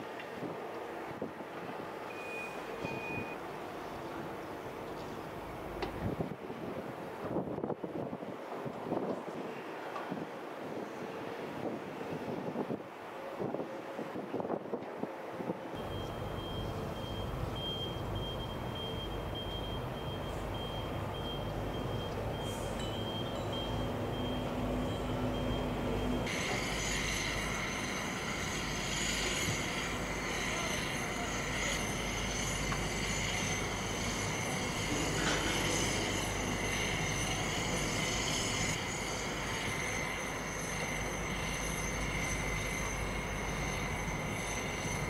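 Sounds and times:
construction machinery rumble: 15.8 - 45.0
reversing alarm tone: 15.8 - 45.0.

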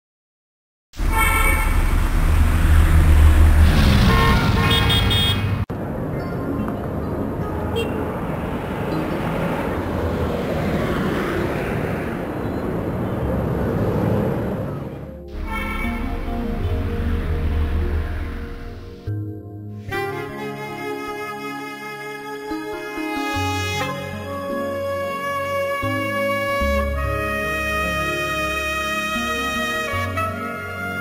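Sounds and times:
car horns honking: 1.0 - 2.9, 3.6 - 5.6, 7.6 - 8.2, 14.9 - 17.1
road rumble: 1.0 - 19.4
background music: 5.7 - 10.8, 14.2 - 31.0.

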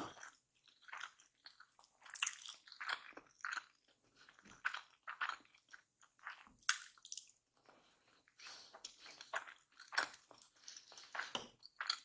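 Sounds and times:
close-miked chewing: 0.0 - 12.0.

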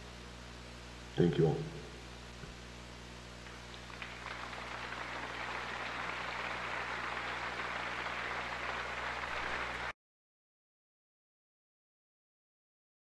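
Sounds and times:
audience applauding: 3.8 - 10.0.

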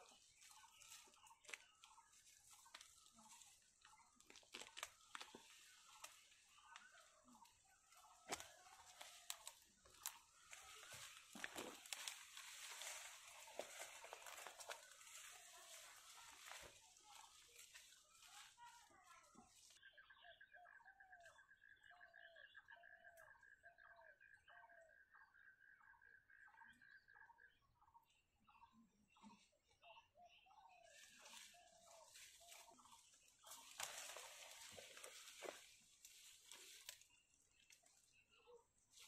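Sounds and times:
rustling leaves: 0.0 - 19.8, 30.9 - 38.2
twigs snapping: 0.4 - 18.5, 33.5 - 38.0.

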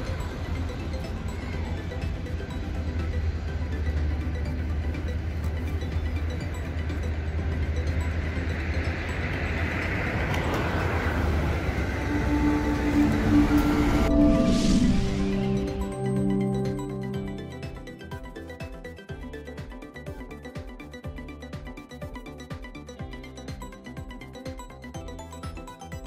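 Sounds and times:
vehicle passing: 0.0 - 17.4
traffic rumble: 0.0 - 17.6
music with held notes: 0.0 - 26.0.

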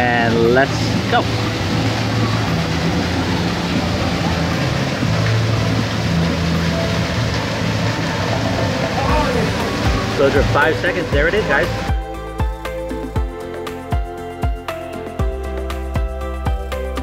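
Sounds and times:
waterfall rushing: 0.0 - 13.3.

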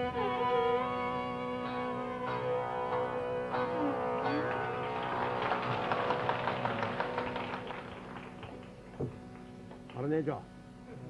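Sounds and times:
held drone: 0.0 - 7.1.

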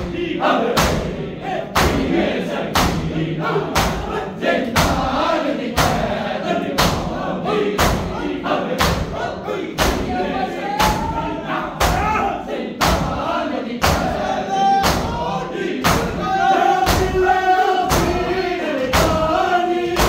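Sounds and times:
men chanting in a group: 0.0 - 20.0
palms slapping bare chests: 1.8 - 2.1, 2.8 - 3.1, 3.8 - 4.1, 7.8 - 8.2, 8.8 - 9.2, 9.8 - 10.2, 11.8 - 12.2, 12.8 - 13.2, 13.8 - 15.2, 16.8 - 17.2, 17.9 - 19.4.

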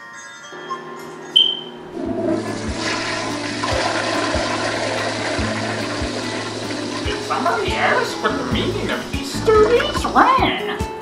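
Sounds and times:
high-pitched squeak: 0.6 - 1.8
toilet flushing: 1.9 - 10.5.

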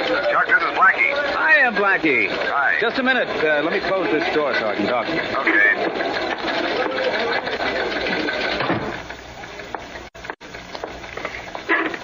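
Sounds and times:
hubbub of voices: 0.0 - 9.8
typewriters clattering: 0.0 - 12.0
door closing: 8.5 - 9.1.

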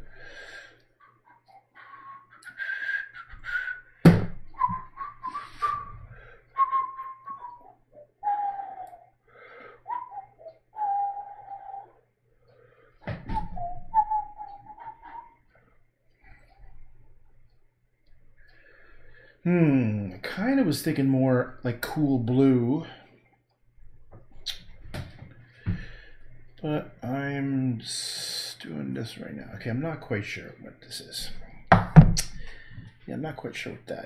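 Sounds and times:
man whistling a slow tune: 1.5 - 12.0, 13.2 - 15.4.

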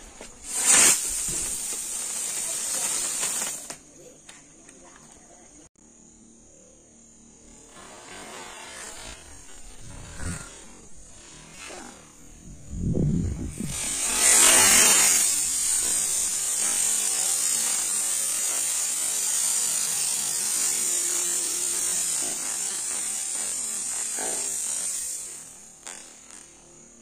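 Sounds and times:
firework hissing whir: 0.0 - 3.8, 7.5 - 27.0.

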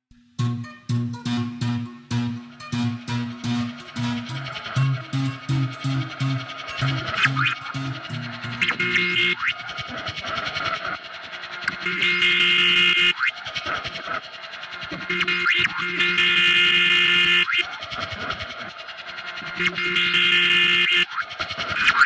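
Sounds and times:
steady multi-tone hum: 0.2 - 22.0.

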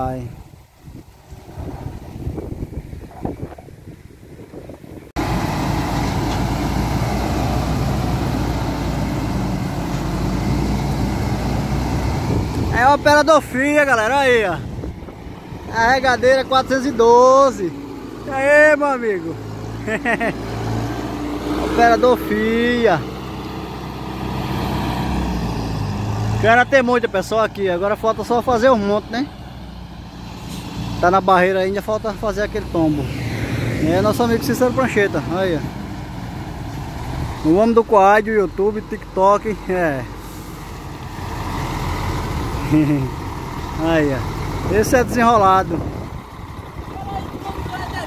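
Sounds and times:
heavy diesel engines running: 4.1 - 48.0.

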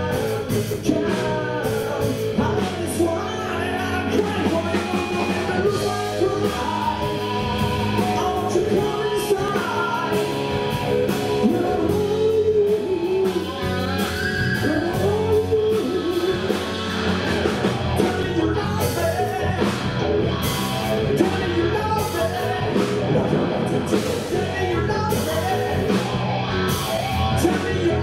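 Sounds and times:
drum kit: 0.0 - 28.0
electric bass: 0.0 - 28.0
electric guitar: 0.0 - 28.0
keyboards: 0.0 - 28.0.

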